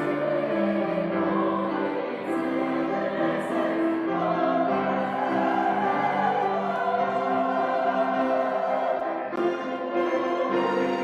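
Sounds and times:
church choir singing: 0:00.0 - 0:11.0
string ensemble: 0:00.0 - 0:11.0.

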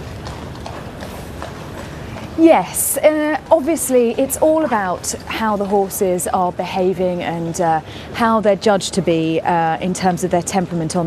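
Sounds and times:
horse hooves clopping on road: 0:00.0 - 0:08.4
street noise: 0:00.0 - 0:11.0.

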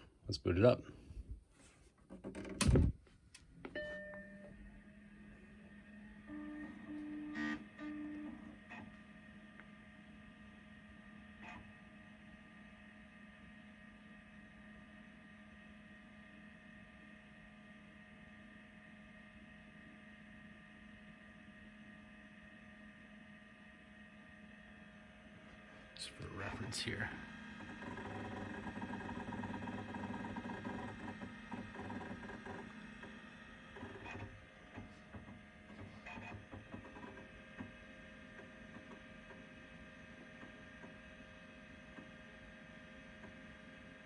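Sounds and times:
cooling fan and hard drive hum: 0:00.0 - 0:44.0.

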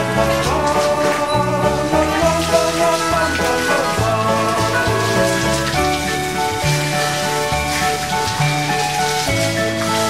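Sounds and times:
background music with low bass: 0:00.0 - 0:10.0
water splashing on floor: 0:00.0 - 0:10.0
water spraying from hose: 0:00.0 - 0:10.0.

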